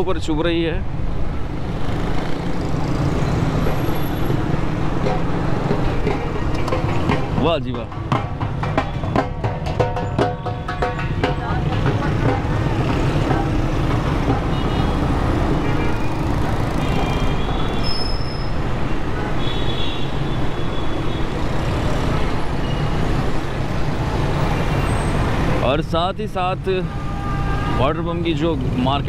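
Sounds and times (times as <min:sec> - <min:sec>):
traffic engines and road noise: 0:00.0 - 0:29.0.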